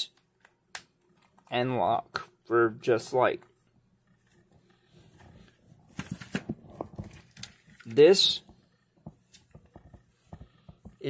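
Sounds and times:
plastic tools handled: 5.2s - 8.0s.

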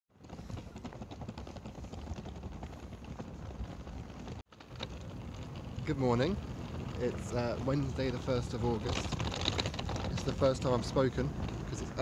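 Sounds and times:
suitcase wheels clattering on bricks: 0.2s - 12.0s.

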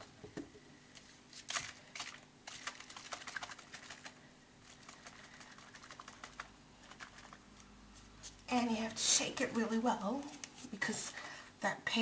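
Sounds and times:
paint bottle shaking: 1.3s - 7.6s.

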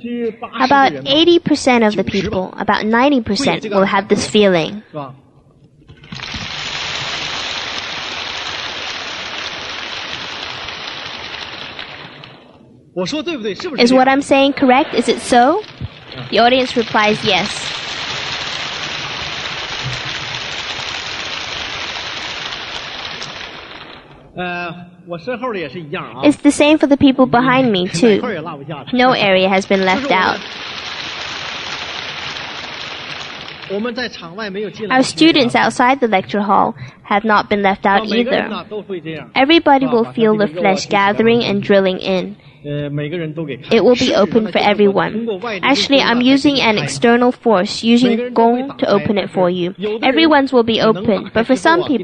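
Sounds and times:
audience applauding: 6.0s - 12.4s, 14.6s - 24.1s, 29.1s - 34.1s.

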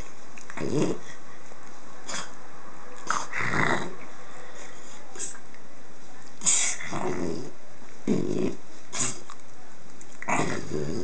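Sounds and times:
puppy growling: 0.0s - 1.2s, 3.0s - 4.1s, 6.4s - 9.4s, 10.1s - 11.0s.

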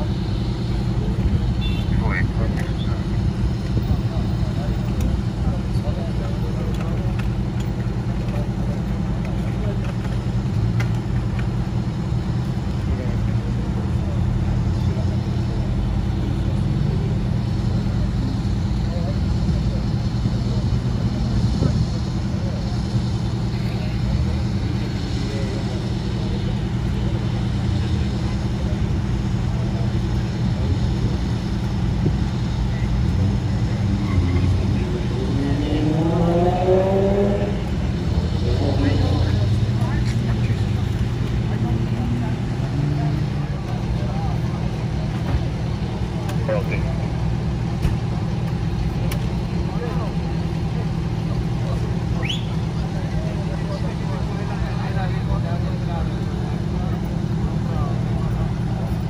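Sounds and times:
diesel engines idling: 0.0s - 59.0s.

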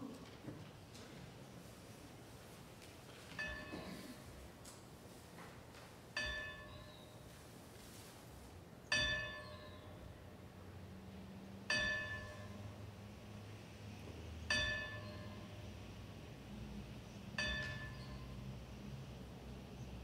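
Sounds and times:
bell tolling: 3.4s - 4.2s, 6.2s - 7.0s, 8.9s - 9.9s, 11.7s - 12.7s, 14.5s - 15.7s, 17.4s - 18.4s.

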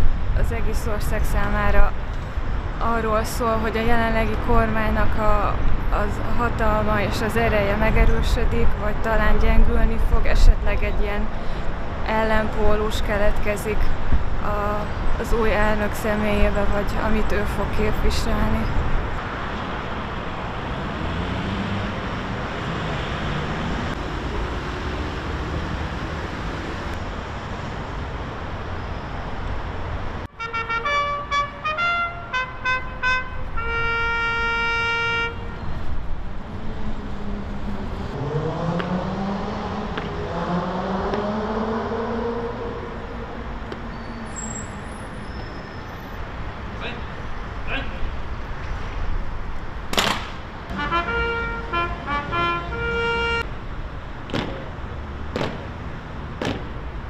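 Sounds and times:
brass signal call: 30.4s - 35.6s, 50.7s - 53.5s.

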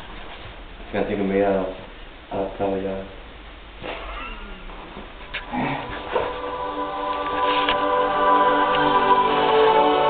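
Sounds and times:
music with long held notes: 6.0s - 10.0s.

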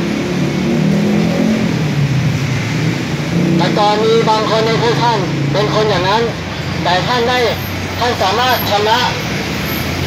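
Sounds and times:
motor vehicle running close by: 0.0s - 10.0s
street traffic rumble: 0.0s - 10.0s.

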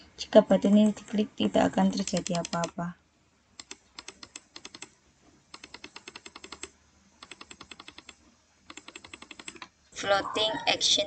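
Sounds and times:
faint keyboard typing: 0.7s - 2.9s, 3.6s - 9.8s.

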